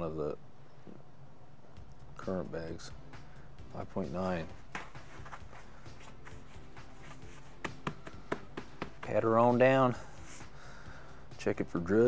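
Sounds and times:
quiet background music: 0.0s - 12.0s
bag tapping on cutting mat: 7.0s - 9.2s.

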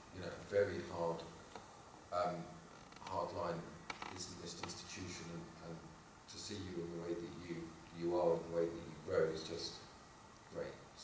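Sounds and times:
man speaking into a microphone: 0.2s - 1.4s, 2.1s - 9.8s.

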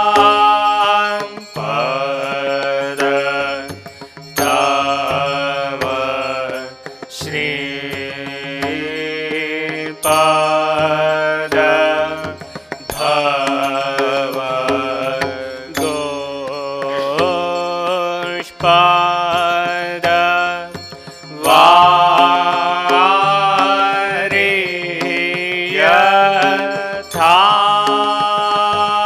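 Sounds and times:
light percussive strikes: 0.0s - 29.0s
sustained instrumental accompaniment: 0.0s - 29.0s
voices chanting a hymn: 0.0s - 29.0s.

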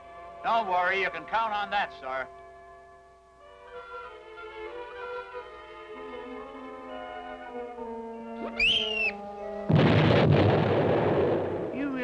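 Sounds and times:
held music notes: 0.0s - 9.8s.

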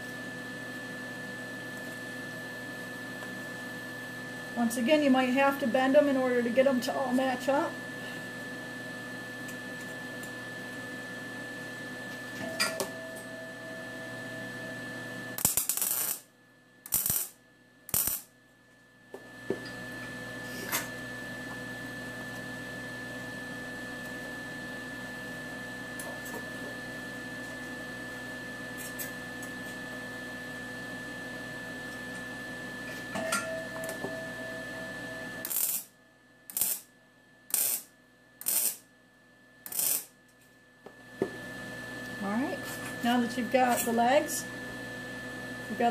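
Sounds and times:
welder bursts: 15.4s - 18.3s, 35.4s - 35.9s, 36.5s - 36.9s, 37.5s - 38.8s, 39.6s - 40.1s.

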